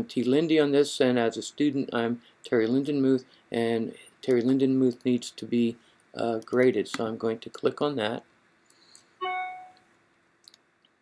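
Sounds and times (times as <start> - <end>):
computer chime: 9.2 - 9.8.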